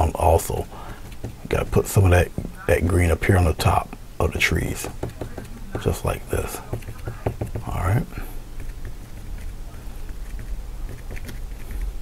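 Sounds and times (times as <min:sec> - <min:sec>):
steady low hum: 0:00.0 - 0:12.0
paintbrush tapping on canvas: 0:00.8 - 0:03.1, 0:04.8 - 0:07.8.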